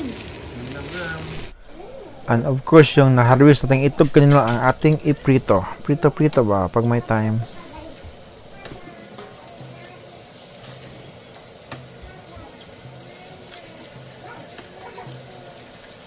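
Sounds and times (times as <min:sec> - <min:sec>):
eggs frying in oil: 0:00.0 - 0:01.6, 0:02.6 - 0:16.0.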